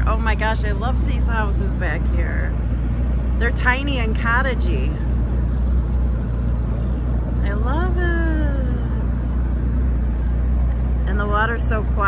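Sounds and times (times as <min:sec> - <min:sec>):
outboard motor droning: 0:00.0 - 0:12.0.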